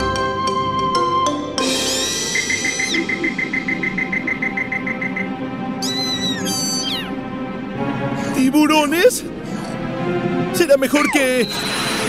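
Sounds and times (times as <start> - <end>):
cartoon background music: 0.0 - 12.0
whistle-like sound effects: 1.6 - 7.1, 11.1 - 12.0.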